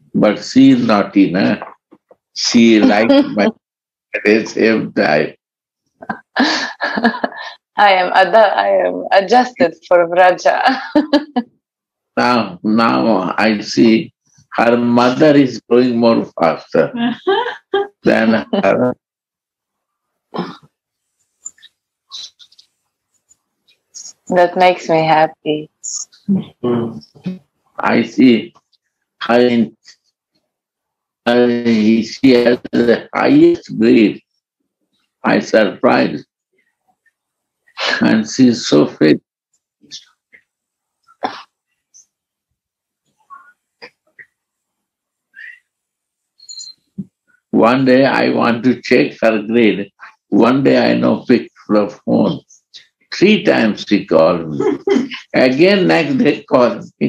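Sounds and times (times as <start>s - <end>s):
man chuckling softly: 2.8s - 3.5s, 6.0s - 7.4s.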